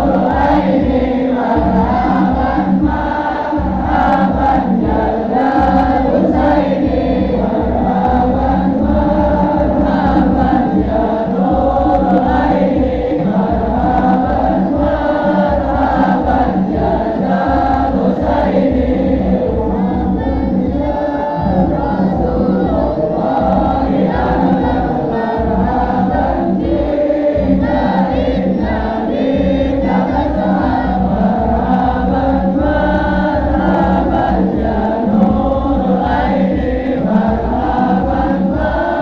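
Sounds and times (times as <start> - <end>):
chorus of voices chanting: 0.0 - 39.0
steady beat: 0.0 - 39.0.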